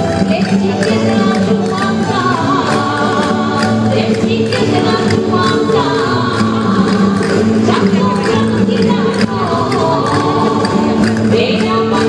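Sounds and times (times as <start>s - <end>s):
folk dance melody: 0.0s - 12.0s
voices singing: 0.0s - 12.0s.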